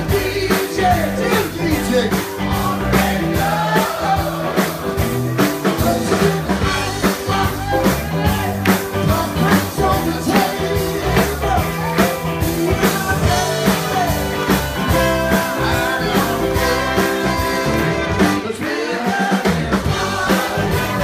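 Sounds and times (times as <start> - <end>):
drums on steady beat: 0.0 - 21.0
electric guitar: 0.0 - 21.0
lead singer: 0.0 - 21.0
live rock band playing: 0.0 - 21.0.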